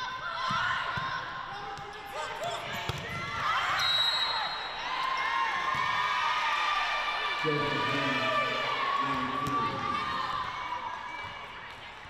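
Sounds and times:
referee's whistle: 3.7s - 4.8s.

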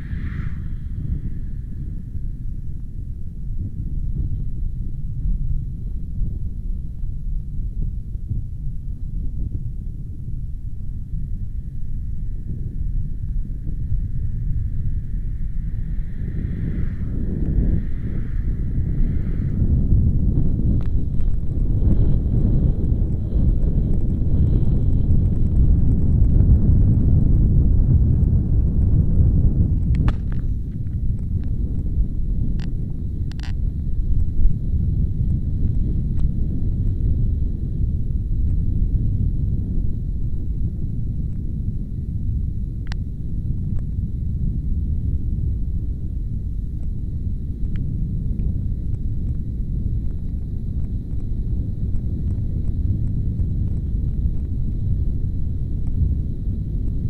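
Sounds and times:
loud low rumble: 0.0s - 57.0s.

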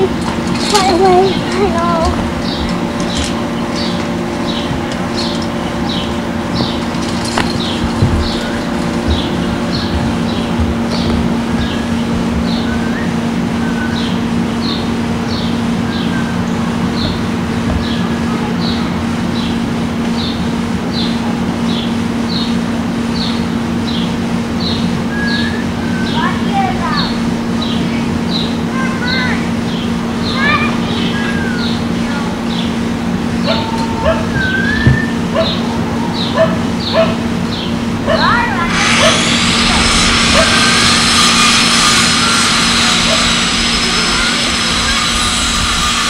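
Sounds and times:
bird chirping: 0.8s - 18.8s.

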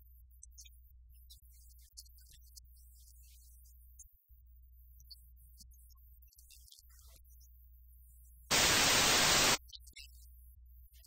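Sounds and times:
television static hiss: 8.5s - 9.6s.

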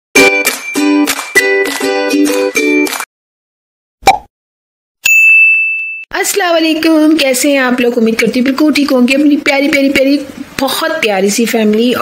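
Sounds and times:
bright bell-like ding: 5.0s - 6.1s.

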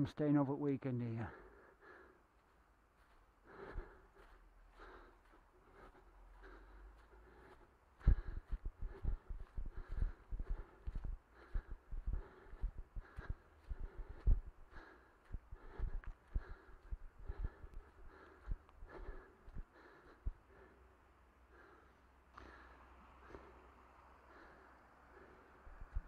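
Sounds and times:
running footsteps on grass: 1.1s - 20.8s.

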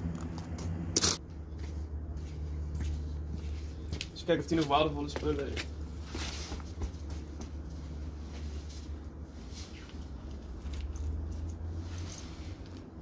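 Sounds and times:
clothing rustling: 5.8s - 13.0s.

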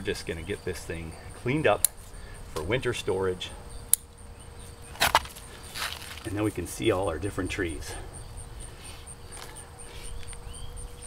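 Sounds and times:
insect chirping: 0.0s - 11.0s
low outdoor rumble: 0.0s - 11.0s
faint rustle: 5.0s - 6.4s.

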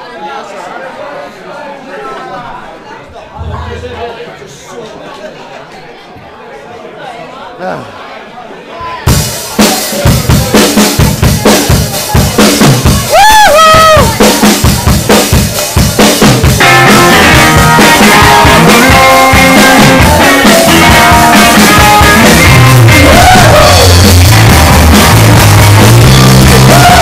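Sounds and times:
bass guitar: 3.4s - 4.2s, 16.2s - 27.0s
drum kit beat: 3.4s - 4.2s, 9.1s - 27.0s
person whooping: 13.1s - 14.1s, 23.0s - 23.9s, 26.6s - 27.0s
distorted electric guitars: 16.2s - 27.0s.

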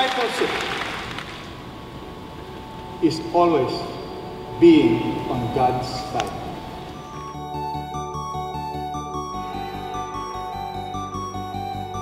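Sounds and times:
room noise hiss: 0.0s - 12.0s
faint held tone: 1.7s - 12.0s.

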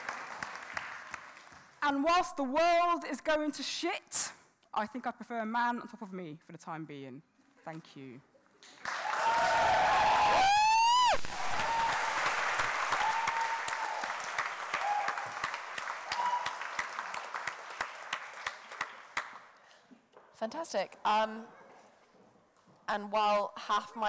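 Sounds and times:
audience applause and cheering: 0.0s - 1.5s, 8.8s - 19.3s
loud rising whoop: 9.0s - 12.3s, 12.9s - 14.1s.

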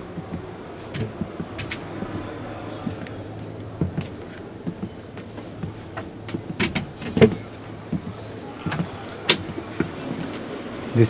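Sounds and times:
footsteps on floor: 0.0s - 10.9s
steady low hum: 0.0s - 11.0s.

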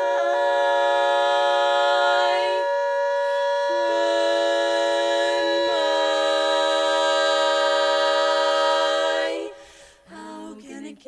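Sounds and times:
women singing a cappella harmony: 0.0s - 11.0s.

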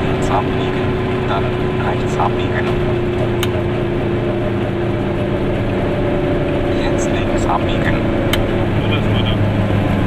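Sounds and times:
two-stroke car engine running: 0.0s - 10.0s
tyre and road noise: 0.0s - 10.0s.

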